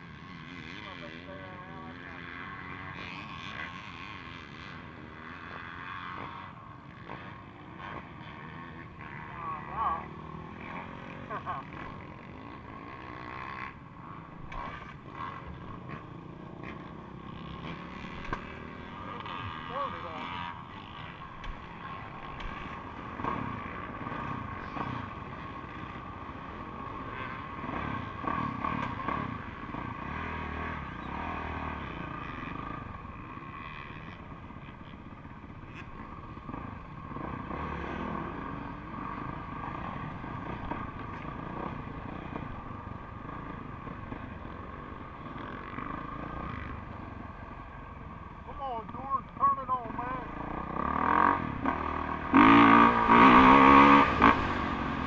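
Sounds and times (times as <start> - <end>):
dirt bikes revving: 0.0 - 55.0
motocross bike engine at low revs: 0.0 - 55.0.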